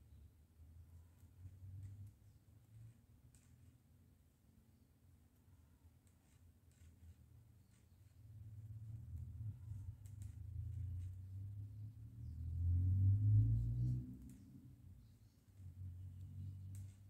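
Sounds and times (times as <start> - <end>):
knitting needles clicking: 1.1 - 4.0, 8.8 - 11.6, 12.9 - 17.0.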